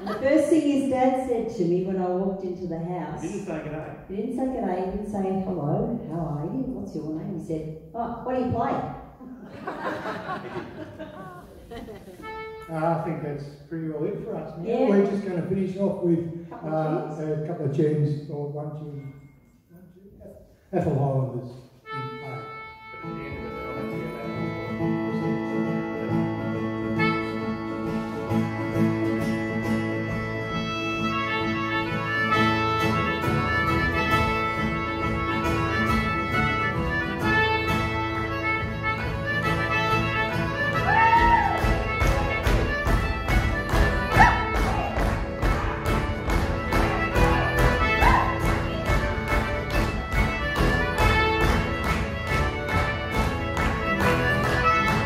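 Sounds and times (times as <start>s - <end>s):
accordion chords: 0.0s - 5.1s, 9.6s - 17.6s, 21.8s - 55.0s
plucked string notes: 21.9s - 55.0s.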